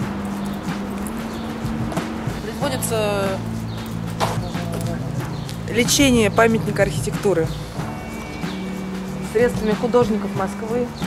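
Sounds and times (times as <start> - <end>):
footsteps on asphalt: 0.0 - 11.0.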